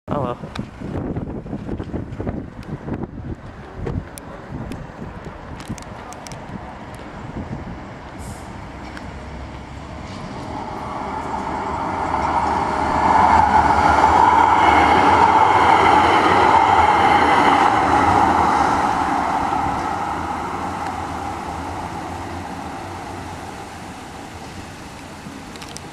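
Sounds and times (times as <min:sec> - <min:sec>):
tram passing: 0:00.7 - 0:25.9.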